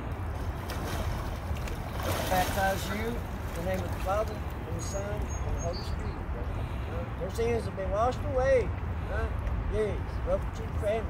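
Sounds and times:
water sloshing: 0.0 - 7.2.

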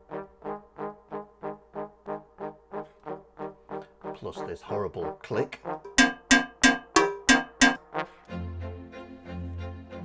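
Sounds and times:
low backing music: 5.7 - 10.0.

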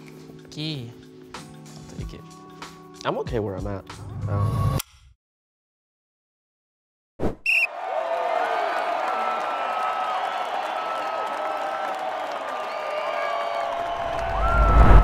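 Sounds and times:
busy arena-like noise: 7.6 - 15.0
low rising whoosh: 13.9 - 15.0.

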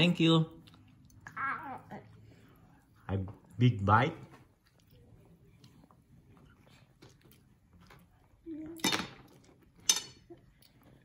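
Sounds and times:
cutlery clinking against dishes: 8.8 - 10.4.

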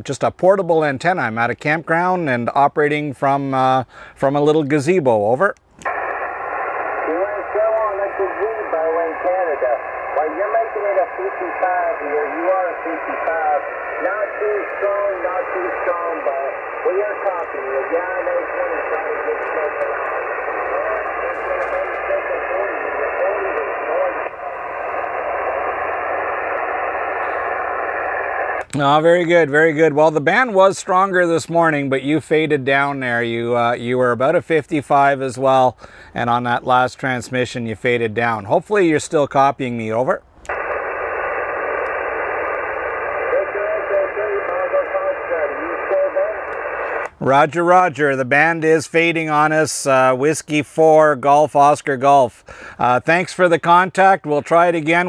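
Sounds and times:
steady radio band hiss: 5.8 - 39.2, 40.5 - 55.0
radio voice through speaker: 5.9 - 28.6, 40.5 - 49.6.

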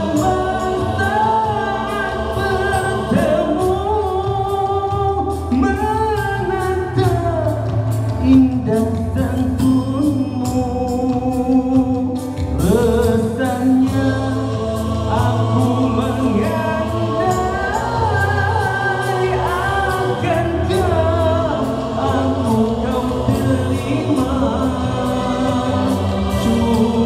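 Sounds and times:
low bass line: 0.0 - 27.0
male vocal group singing in harmony: 0.0 - 27.0.

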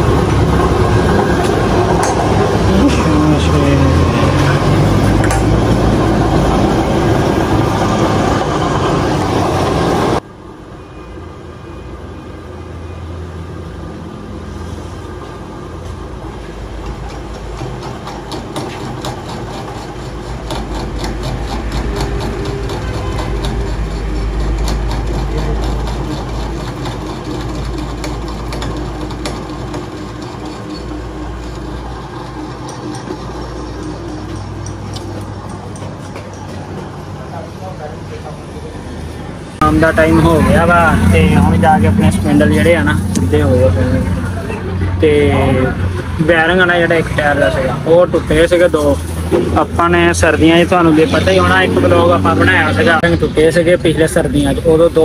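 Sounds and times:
metal lathe humming: 0.0 - 10.2, 15.0 - 37.4
loud rough mechanical noise: 0.0 - 55.0.

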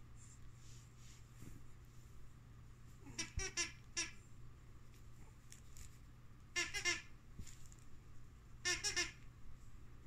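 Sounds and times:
dog toy squeaking: 6.6 - 7.1, 8.7 - 9.2.

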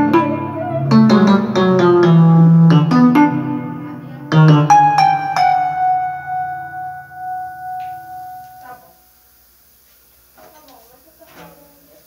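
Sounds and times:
electric piano chord ringing: 0.0 - 9.1.

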